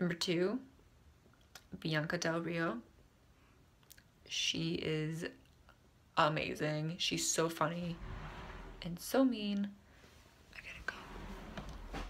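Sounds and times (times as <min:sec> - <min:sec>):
faint whispering: 0:10.5 - 0:11.5.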